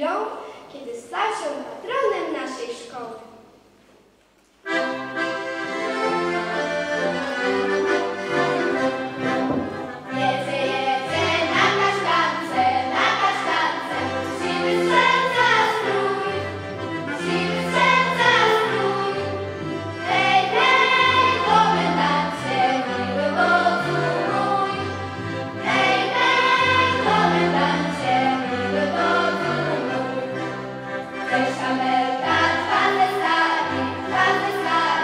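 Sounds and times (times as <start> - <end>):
accordion bass notes: 4.6 - 35.0
children's choir singing: 6.4 - 35.0.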